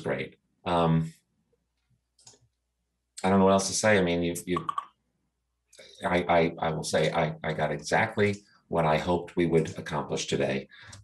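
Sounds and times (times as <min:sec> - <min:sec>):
person's voice: 0:00.0 - 0:01.1, 0:03.2 - 0:04.8, 0:06.0 - 0:11.0.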